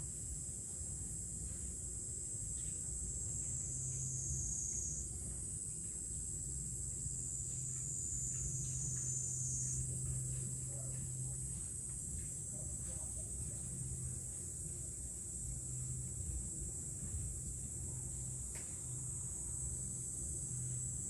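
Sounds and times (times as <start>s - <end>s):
cicadas chorus: 0.0s - 21.0s
low steady hum: 0.0s - 21.0s.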